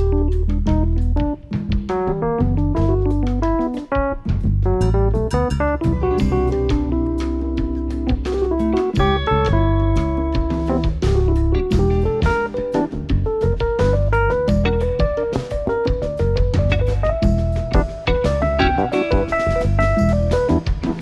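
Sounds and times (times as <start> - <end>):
drum kit: 0.0 - 21.0
electric bass: 0.0 - 21.0
electric guitar melodic phrases: 0.0 - 21.0
keyboard: 0.0 - 21.0.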